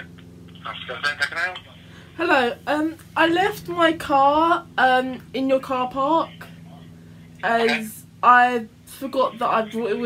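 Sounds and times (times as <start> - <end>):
voice over speakerphone: 0.0 - 1.8, 7.4 - 7.9
low line hum: 0.0 - 10.0.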